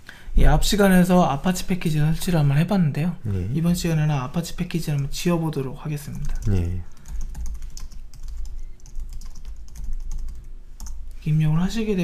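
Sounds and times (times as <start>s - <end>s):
steady low hum: 0.0s - 12.0s
computer keyboard typing: 6.2s - 11.1s.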